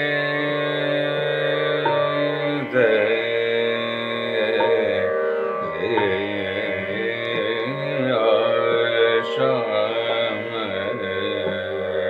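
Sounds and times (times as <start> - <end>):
man singing classical vocal: 0.0 - 12.0.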